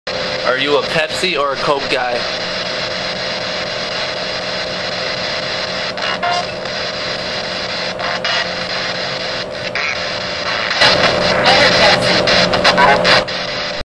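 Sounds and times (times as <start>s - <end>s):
hum: 0.1s - 13.8s
radio static hiss: 0.1s - 13.8s.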